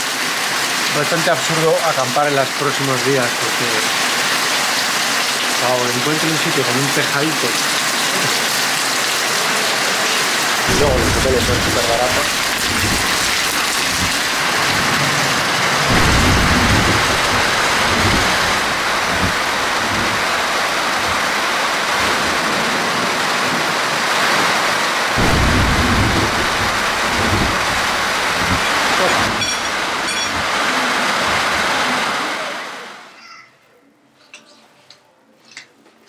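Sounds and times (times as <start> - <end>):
heavy rain streaming off a roof: 0.0 - 33.2
deep low rumbles: 10.7 - 15.1, 15.8 - 21.5, 25.2 - 30.6.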